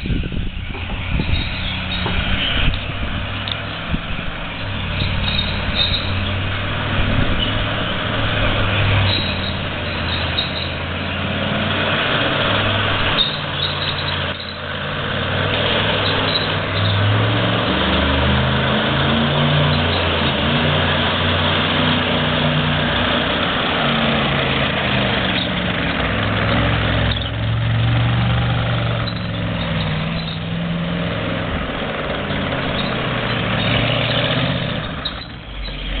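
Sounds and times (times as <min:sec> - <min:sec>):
tank engine revving: 0:00.0 - 0:36.0.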